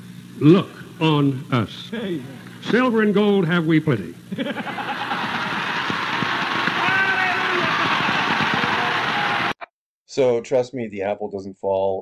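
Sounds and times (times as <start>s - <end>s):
person laughing: 4.3s - 5.6s
crowd applauding and cheering: 4.4s - 9.7s.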